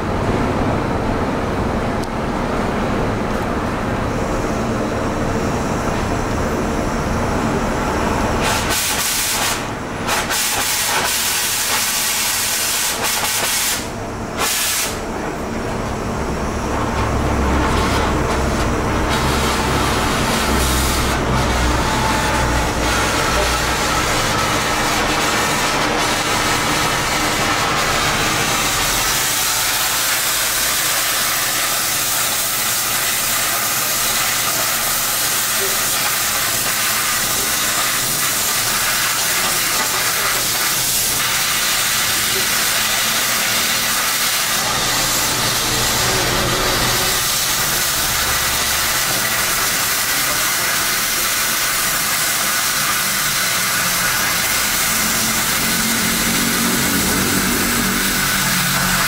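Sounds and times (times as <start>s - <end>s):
cutting torch flame hissing: 8.4s - 15.0s, 17.2s - 59.0s.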